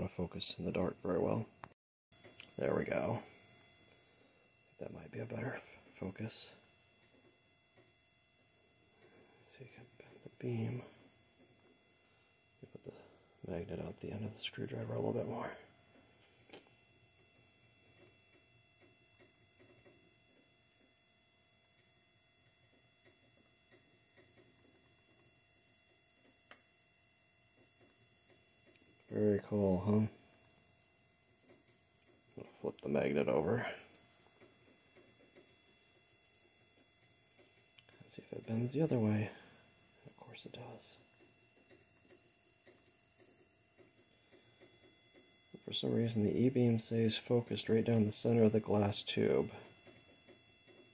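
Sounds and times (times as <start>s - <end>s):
faint high whine: 0.0s - 50.9s
steady low hum: 0.0s - 50.9s.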